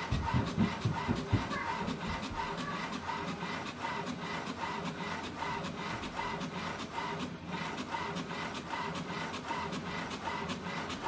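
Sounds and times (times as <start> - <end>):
printer carriage motor whine: 0.0 - 11.0
printer feed roller rattle: 0.0 - 11.0.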